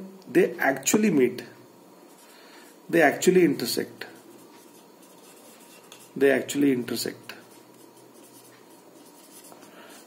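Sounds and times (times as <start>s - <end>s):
marker pen writing on whiteboard: 4.1s - 6.4s, 7.0s - 10.0s.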